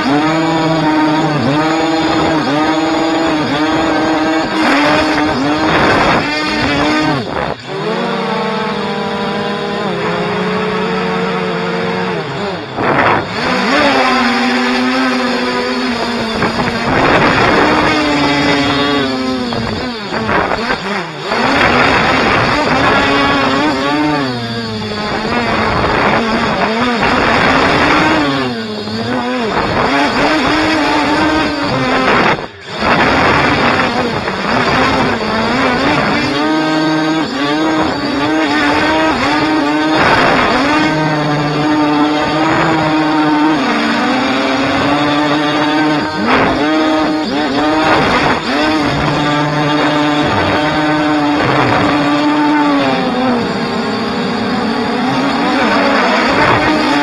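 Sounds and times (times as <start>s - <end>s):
drone propellers buzzing: 0.0s - 57.0s.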